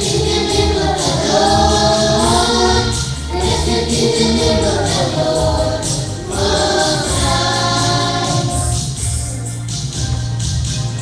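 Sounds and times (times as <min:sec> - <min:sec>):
children's choir singing: 0:00.0 - 0:09.0.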